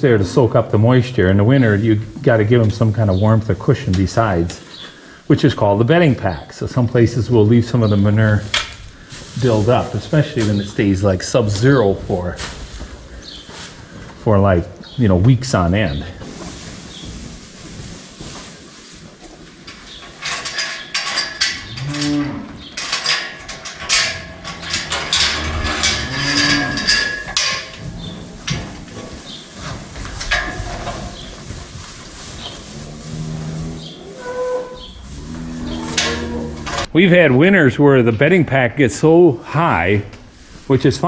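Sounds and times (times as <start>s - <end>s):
cows mooing: 21.5s - 22.7s, 23.4s - 29.0s, 32.6s - 36.9s
sharp knocks and clatter: 22.8s - 33.2s.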